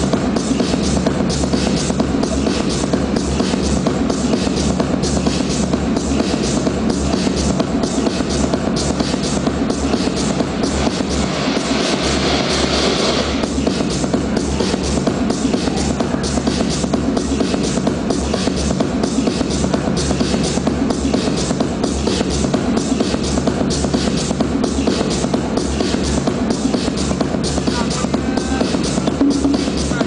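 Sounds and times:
kick drum beat: 0:00.0 - 0:11.8, 0:13.3 - 0:30.0
electronic dance music: 0:00.0 - 0:30.0.

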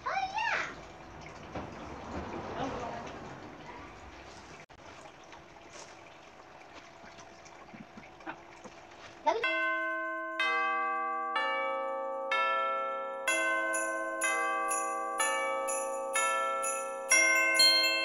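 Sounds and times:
bell-toned music: 0:09.4 - 0:18.0.

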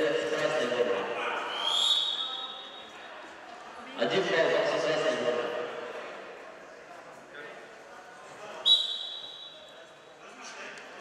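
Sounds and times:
sports hall echoing noise: 0:00.0 - 0:11.0
high whistle blast: 0:08.7 - 0:09.6.

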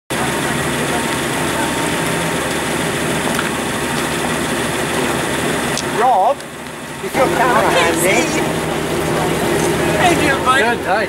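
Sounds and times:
car engine idling: 0:00.1 - 0:11.0.

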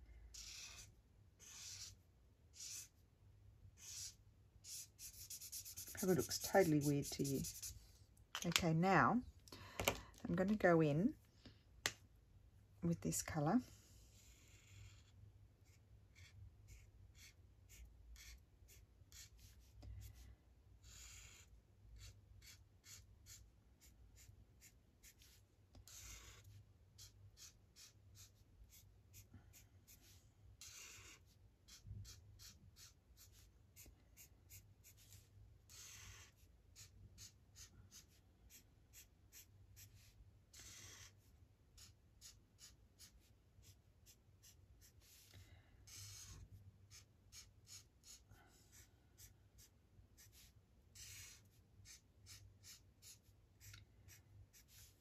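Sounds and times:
marker nib scratching paper: 0:00.3 - 0:03.0, 0:03.8 - 0:07.8, 0:14.0 - 0:20.2, 0:20.8 - 0:55.0.

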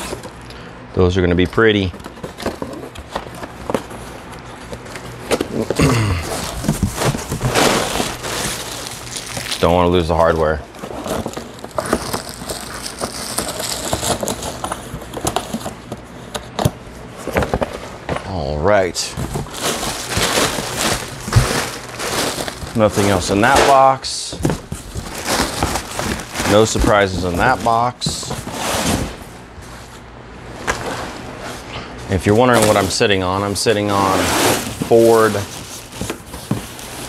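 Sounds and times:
paper and plastic wrapping rustling: 0:00.0 - 0:00.4, 0:01.6 - 0:37.0
cardboard flaps scraping: 0:02.0 - 0:18.3, 0:19.0 - 0:31.7, 0:32.4 - 0:37.0.

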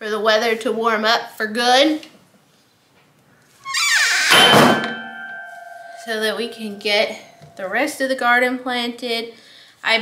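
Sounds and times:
frame thunk: 0:04.2 - 0:05.5
tensioned wires ringing: 0:04.3 - 0:08.0.

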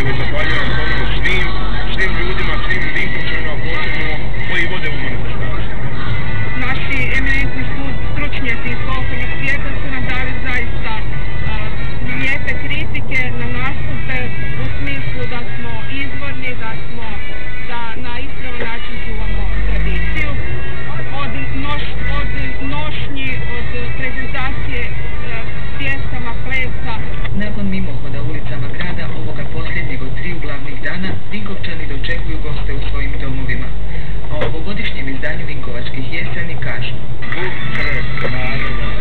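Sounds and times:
car radio music with singing: 0:00.0 - 0:39.0
engine and road rumble: 0:00.0 - 0:39.0.

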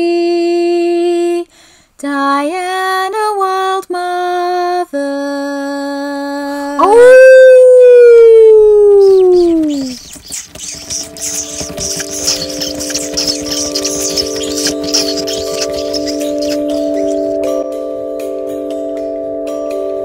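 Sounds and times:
long howl sliding down in pitch: 0:06.8 - 0:09.7
scratchy crackling noise: 0:08.6 - 0:17.5.

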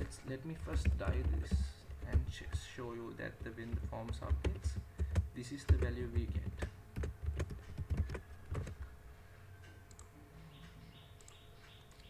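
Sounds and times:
computer keyboard typing: 0:00.0 - 0:08.9
faint steady hum: 0:00.0 - 0:12.0.

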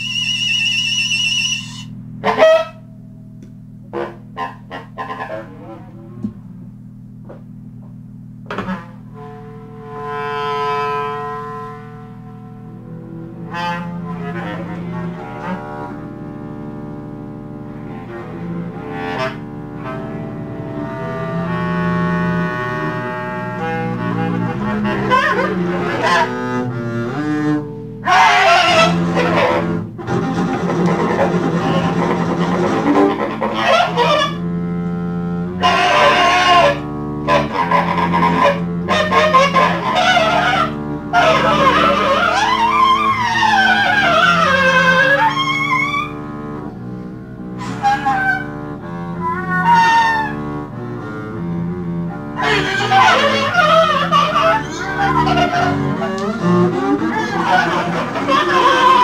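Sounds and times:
bowed double bass: 0:00.0 - 0:59.0
saxophone: 0:00.0 - 0:59.0.

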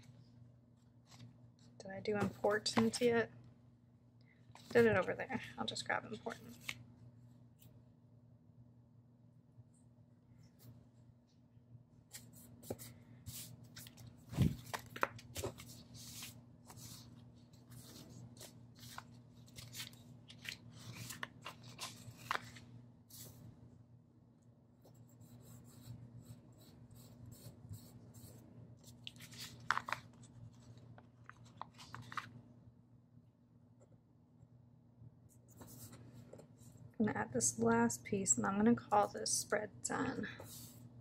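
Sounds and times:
faint steady hum: 0:00.0 - 0:41.0
paper sheets rustling: 0:12.1 - 0:23.4, 0:28.8 - 0:32.4.

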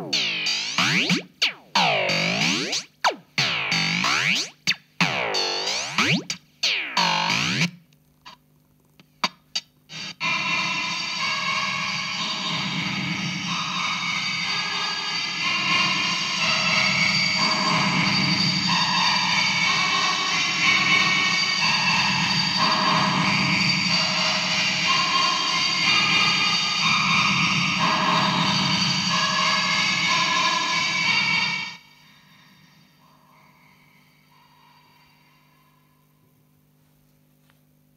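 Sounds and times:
synth bass pulse: 0:00.0 - 0:07.8
synthesizer bossa nova chords: 0:00.0 - 0:07.8.

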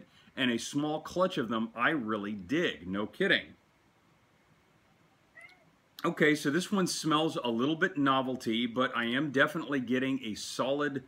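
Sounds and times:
faint high-pitched call: 0:05.3 - 0:05.7.

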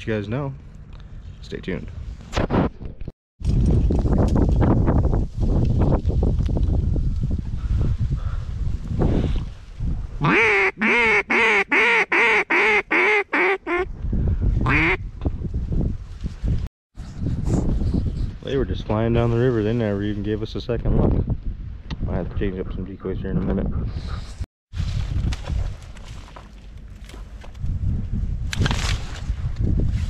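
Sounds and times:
loud duck quacks: 0:10.2 - 0:13.9, 0:14.7 - 0:15.0.

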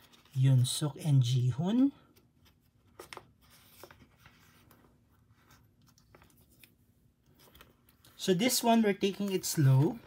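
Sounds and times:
photocards rustling in plastic sleeves: 0:00.0 - 0:10.0.

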